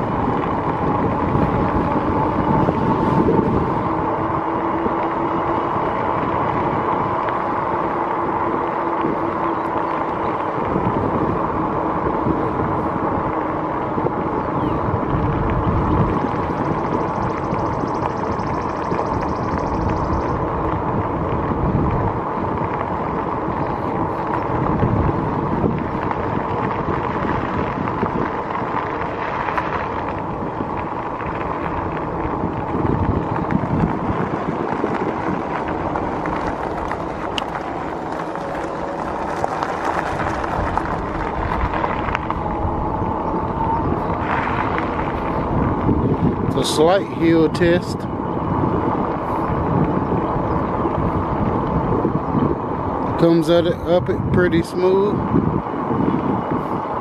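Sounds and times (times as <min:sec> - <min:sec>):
faint steady whine: 0:00.0 - 0:57.0
wind rushing over microphone: 0:00.0 - 0:57.0.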